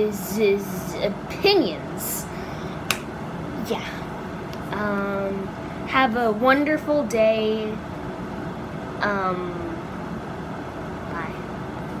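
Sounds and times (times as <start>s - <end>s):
steady background noise: 0.0s - 12.0s.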